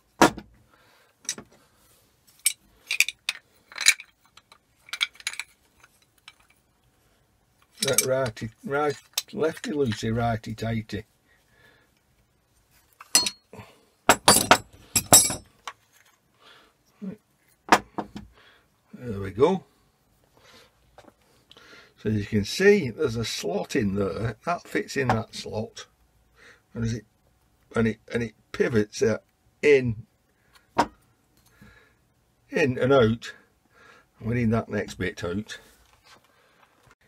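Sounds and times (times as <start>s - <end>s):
metallic clinks and clicks: 2.4s - 6.6s, 7.7s - 8.1s.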